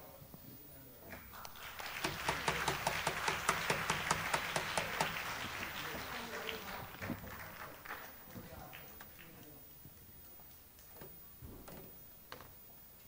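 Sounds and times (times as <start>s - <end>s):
murmur of voices: 0.0s - 9.8s.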